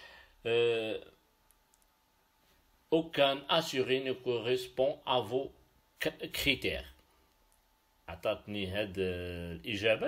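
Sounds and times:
man's voice: 0:00.5 - 0:01.1, 0:02.9 - 0:06.9
computer mouse clicks: 0:01.5 - 0:01.9.

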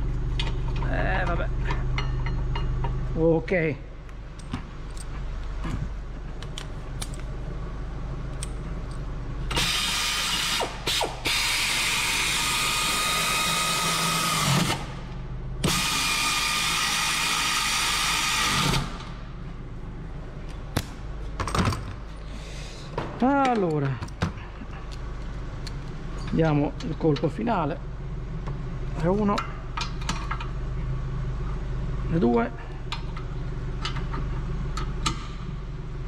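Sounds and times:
tools clicking being handled: 0:04.3 - 0:05.2, 0:06.4 - 0:07.3, 0:08.3 - 0:09.0
pneumatic air ratchet spinning: 0:09.5 - 0:14.9, 0:15.6 - 0:19.0.

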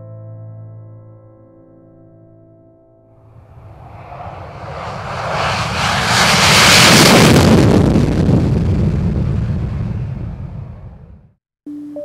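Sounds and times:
jet engines roaring at takeoff: 0:03.3 - 0:11.2.

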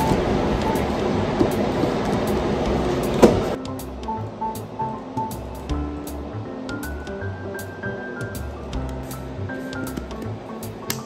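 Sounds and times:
steady loud rushing hiss: 0:00.0 - 0:07.0.

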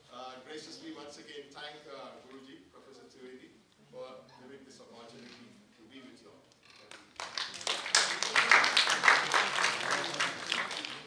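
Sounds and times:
audience applauding: 0:07.2 - 0:11.0.

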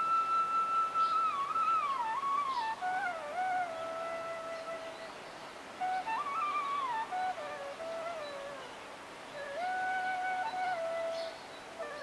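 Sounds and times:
solo melody with sliding notes: 0:00.0 - 0:05.0, 0:05.8 - 0:12.0.

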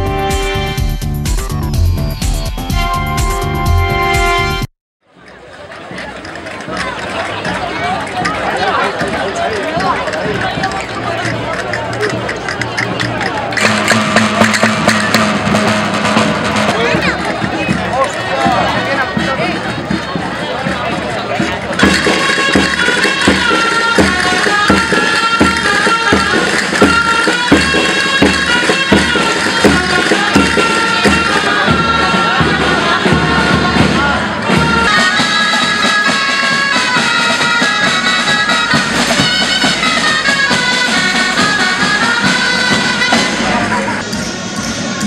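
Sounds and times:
drums beating: 0:00.0 - 0:45.0
shawm playing lively tune: 0:00.0 - 0:45.0.

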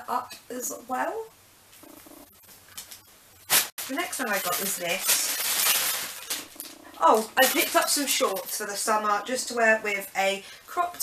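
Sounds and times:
plastic bag crinkling: 0:02.8 - 0:08.9.

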